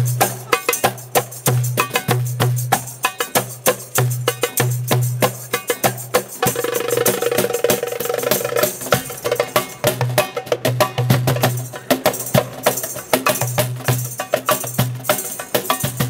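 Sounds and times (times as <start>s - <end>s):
hand drums playing fast rhythm: 0.0s - 16.0s.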